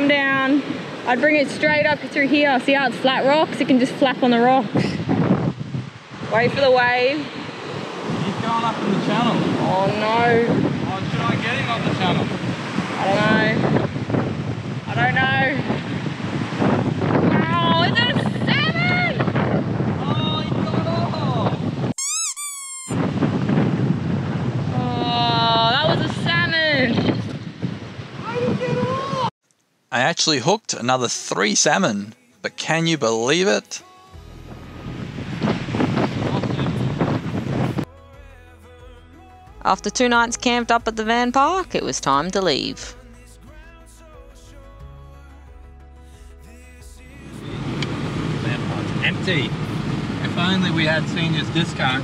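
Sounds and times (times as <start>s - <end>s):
wind buffeting microphone: 0.0s - 22.0s, 23.0s - 29.3s, 34.4s - 37.9s, 47.3s - 52.0s
waves breaking on rocks: 5.9s - 13.9s
wavering pitched sound: 22.0s - 23.0s.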